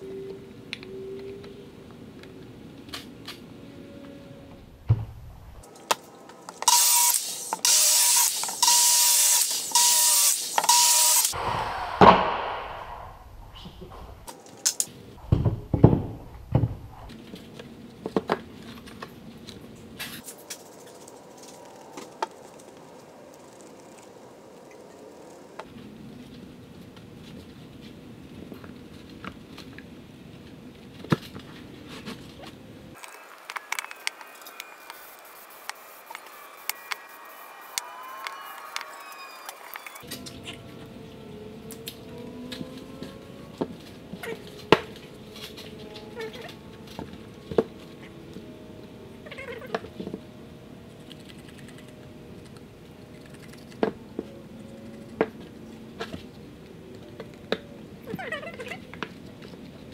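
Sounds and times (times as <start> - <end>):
power saw cutting board: 6.6 - 12.9.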